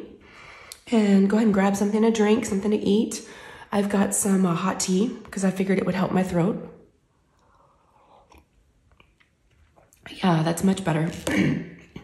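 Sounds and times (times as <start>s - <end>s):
sipping and swallowing tea: 7.4s - 10.0s.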